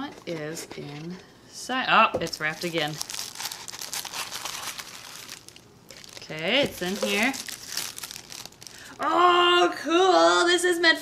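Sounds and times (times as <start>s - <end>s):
tissue paper crinkling and tearing: 2.3s - 8.9s.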